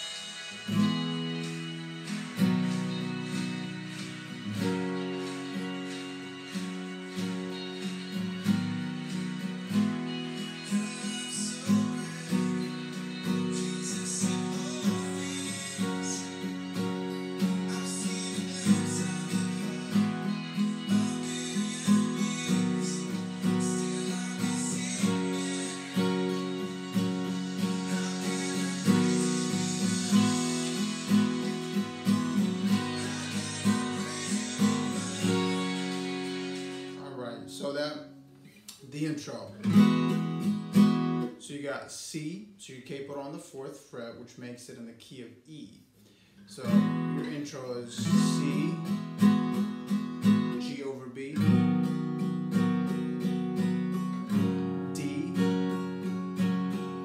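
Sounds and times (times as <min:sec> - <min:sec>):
acoustic guitar strumming: 0:00.0 - 0:44.1, 0:46.1 - 0:57.0.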